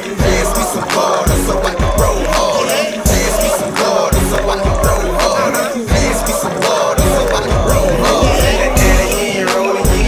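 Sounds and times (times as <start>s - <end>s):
hip hop track with deep bass: 0.0s - 10.0s
person rapping into microphone: 0.0s - 10.0s.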